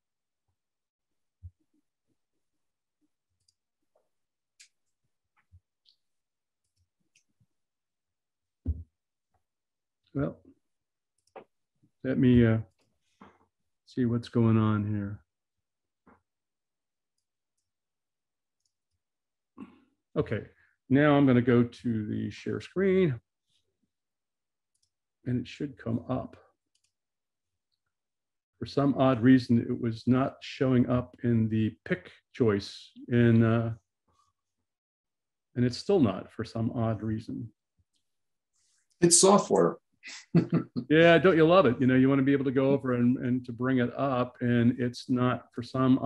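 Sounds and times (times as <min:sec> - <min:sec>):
faint clicks: 0:03.4 - 0:06.0
man speaking: 0:10.2 - 0:10.4, 0:12.1 - 0:12.7, 0:13.9 - 0:15.2, 0:20.2 - 0:23.2, 0:25.3 - 0:26.4, 0:28.6 - 0:33.8, 0:35.6 - 0:37.5, 0:39.0 - 0:46.0.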